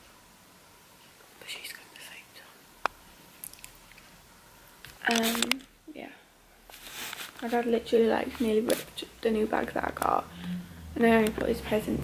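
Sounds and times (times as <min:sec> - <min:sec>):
person whispering: 0:01.4 - 0:02.6.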